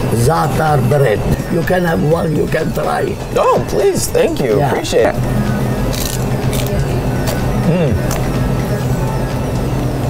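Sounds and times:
faint background music: 0.0 - 10.0
low hum: 0.0 - 10.0.

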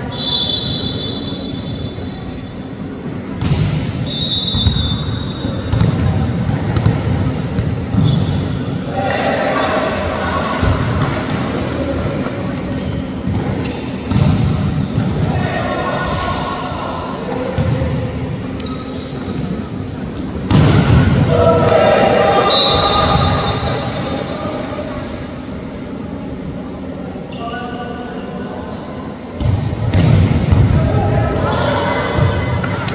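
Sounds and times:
players shouting: 8.8 - 11.4, 15.2 - 17.6, 20.6 - 24.9
volleyball hit with thuds: 29.4 - 30.8.

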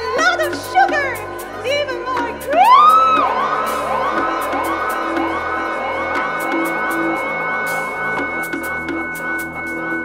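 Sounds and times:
high vocal glide with delay: 0.0 - 8.5
steady held tones: 2.2 - 10.0
low drone: 2.9 - 10.0.

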